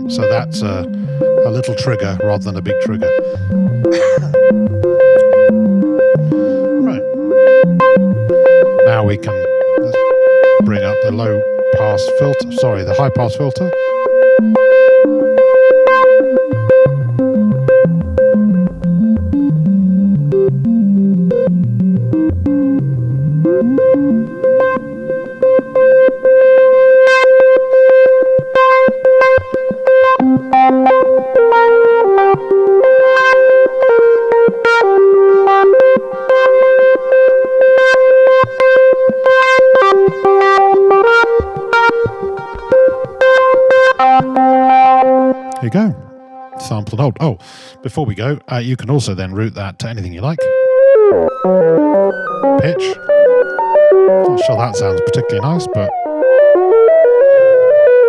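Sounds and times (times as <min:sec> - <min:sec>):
random stepped synthesizer bleeps: 0:00.2 - 0:32.1, 0:32.9 - 0:47.3, 0:50.2 - 0:57.2.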